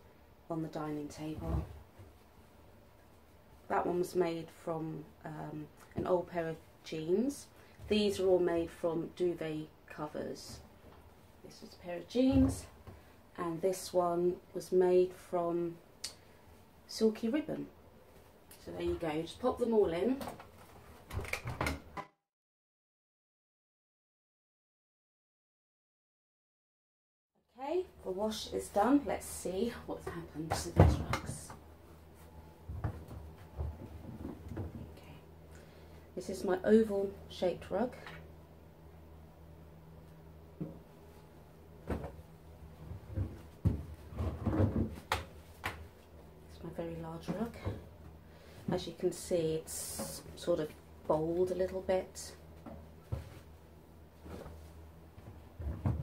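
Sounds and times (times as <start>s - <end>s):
low steady hum: 0.0s - 22.0s, 27.4s - 56.0s.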